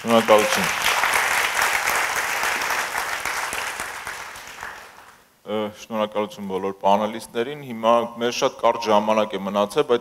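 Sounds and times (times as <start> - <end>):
audience applauding: 0.0 - 5.2.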